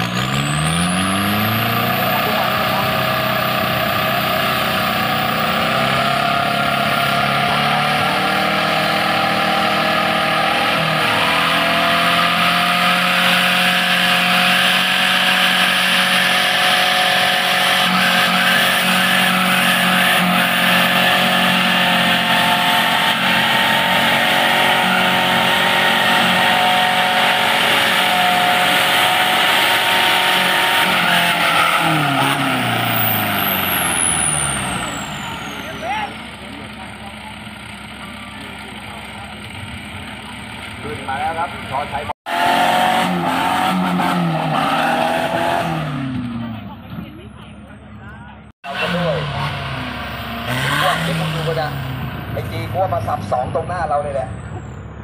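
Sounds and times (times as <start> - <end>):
diesel engine revving under load: 0.0 - 55.0.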